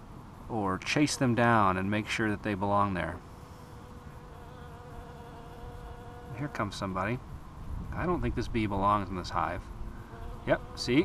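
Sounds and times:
honey bees buzzing: 0.9s - 7.2s, 7.9s - 11.0s.

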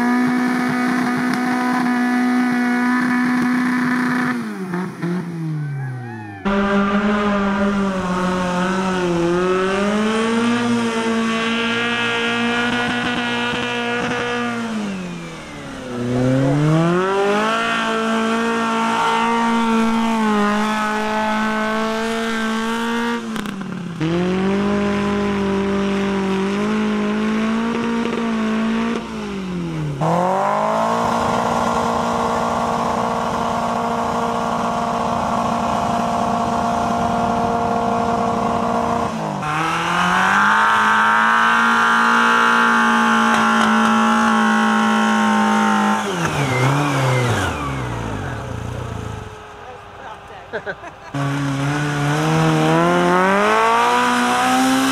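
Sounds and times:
car engines at high revs: 0.0s - 54.9s.

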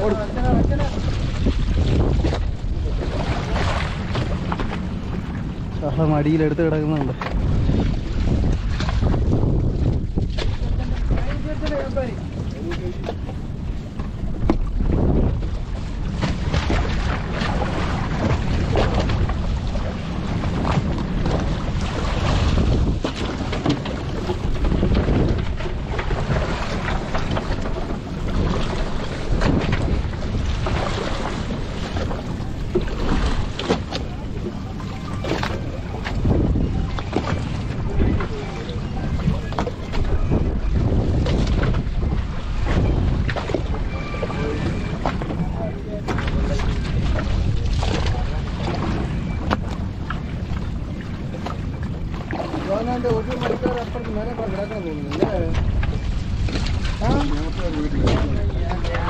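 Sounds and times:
knocks and splashes: 0.0s - 59.0s
water slapping and splashing: 0.0s - 59.0s
wind buffeting microphone: 0.0s - 59.0s.

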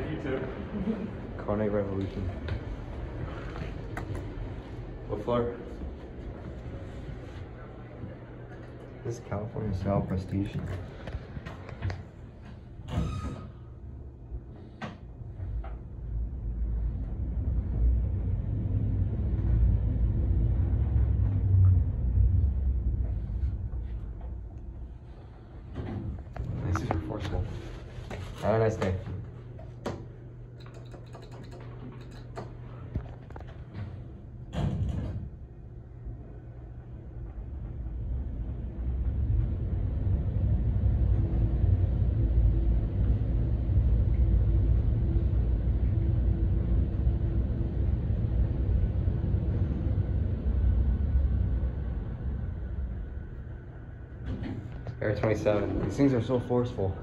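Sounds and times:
elevator car low rumble: 0.0s - 57.0s
elevator doors closing clicks: 29.8s - 32.8s.

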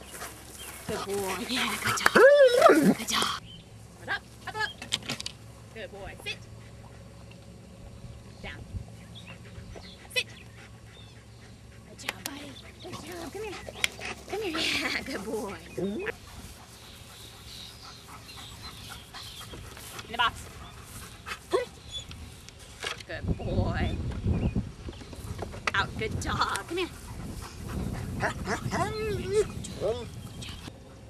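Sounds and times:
woman speaking commands: 0.9s - 3.4s, 5.8s - 6.4s, 14.3s - 16.1s, 20.1s - 20.4s, 25.8s - 27.0s, 28.7s - 29.5s
steady low rumble: 5.3s - 31.0s.

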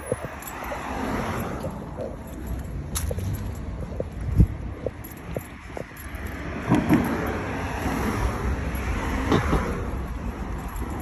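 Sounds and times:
car passing: 0.0s - 11.0s
steady low traffic rumble: 0.0s - 11.0s.

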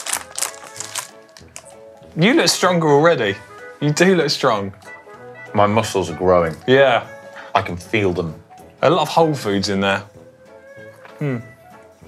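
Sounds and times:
plastic bag crinkling: 0.0s - 1.8s
background music: 0.0s - 12.0s.

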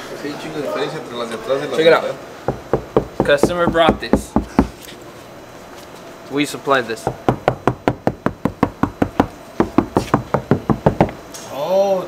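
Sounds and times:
fist knocks on car door: 2.5s - 4.8s, 7.1s - 11.2s.

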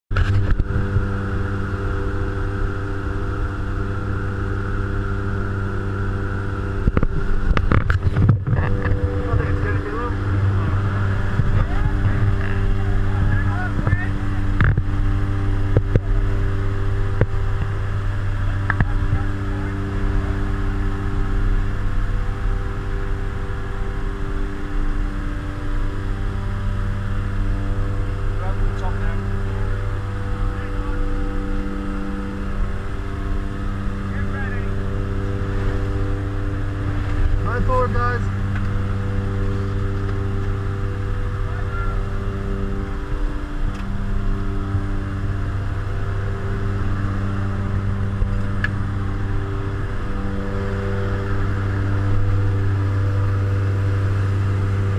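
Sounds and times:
plane engines droning: 0.1s - 54.9s.

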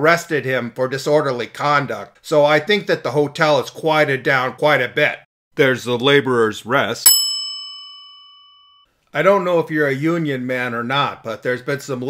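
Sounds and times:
bell ringing: 7.1s - 8.8s.

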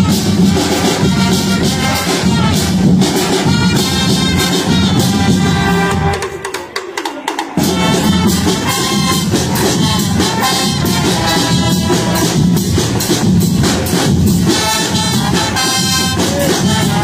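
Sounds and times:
marching band playing: 0.0s - 17.0s
sharp percussion strikes: 0.0s - 17.0s.

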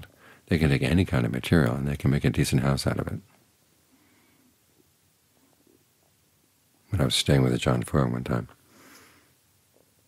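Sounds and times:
man speaking: 0.0s - 3.3s, 6.9s - 8.6s.

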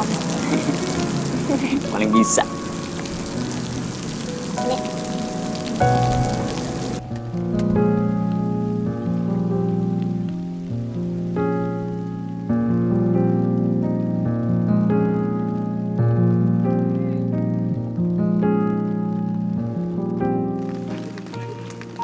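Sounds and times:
heavy rain falling: 0.0s - 22.0s
soft keyboard music chords: 0.0s - 22.0s.

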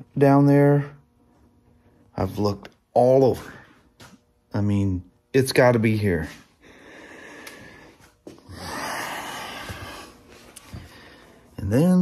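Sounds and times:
man sighing: 8.4s - 10.2s.

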